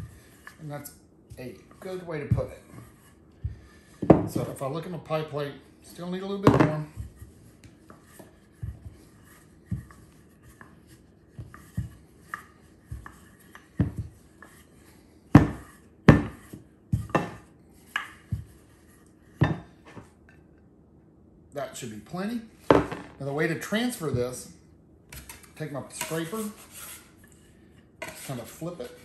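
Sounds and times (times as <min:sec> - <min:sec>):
rolling pin rolling dough: 0:00.0 - 0:20.2, 0:25.1 - 0:29.0
dough knocks and thumps: 0:01.3 - 0:04.7, 0:06.3 - 0:14.7, 0:15.3 - 0:20.2.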